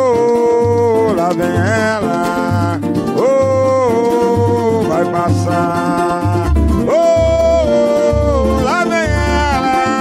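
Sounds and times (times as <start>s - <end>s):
man singing: 0.0s - 10.0s
nylon-string acoustic guitar: 0.0s - 10.0s
pandeiro: 0.0s - 10.0s.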